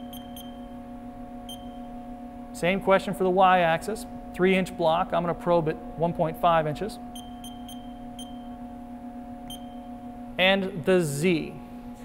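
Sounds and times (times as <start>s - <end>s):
high keypad beeps: 0.0s - 0.7s, 1.5s - 1.9s, 7.2s - 8.5s, 9.5s - 9.8s
steady low hum: 0.0s - 12.0s.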